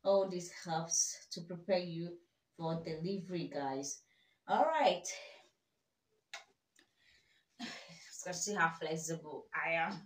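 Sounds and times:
person speaking: 8.1 - 10.0.

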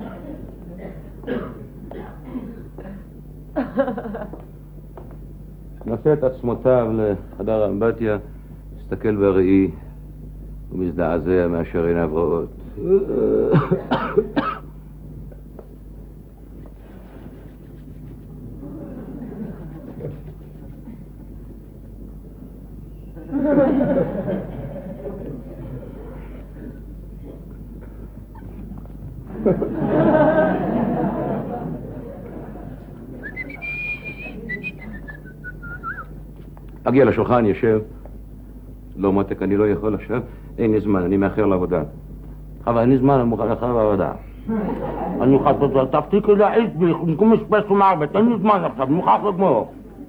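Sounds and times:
man coughing harshly: 0.8 - 3.1, 12.9 - 14.8
man whistling a tune: 33.2 - 36.1.

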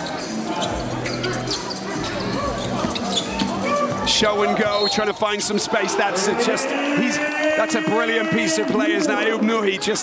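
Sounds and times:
arena music: 0.0 - 10.0.

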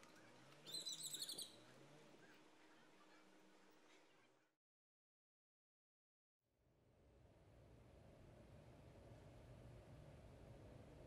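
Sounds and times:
faint bird chirping: 0.6 - 2.4.

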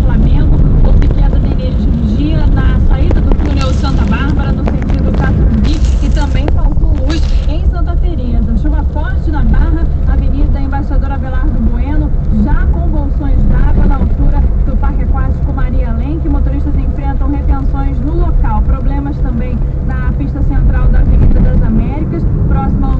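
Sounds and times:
car engine and tyres on wet road: 0.0 - 22.9
talk from car radio: 0.0 - 22.9.

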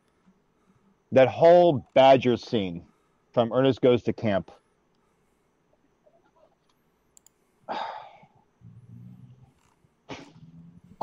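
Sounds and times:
man humming chuckle: 10.1 - 11.0.

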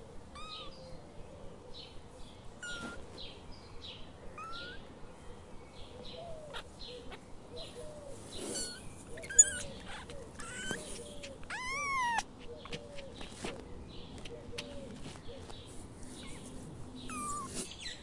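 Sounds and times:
drawn-out rising and falling call: 8.5 - 13.6
animal chirps and whistles: 8.6 - 9.7.

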